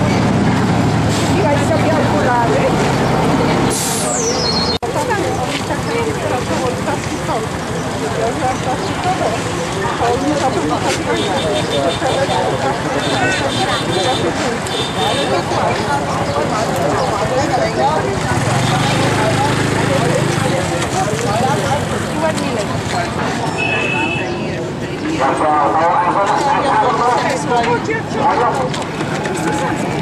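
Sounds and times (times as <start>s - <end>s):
people talking over one another: 0.0s - 30.0s
rumble of vehicle engines: 0.0s - 30.0s.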